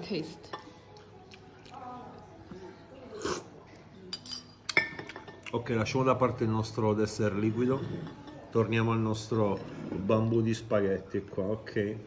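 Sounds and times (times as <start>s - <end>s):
sipping from a spoon: 3.0s - 3.7s.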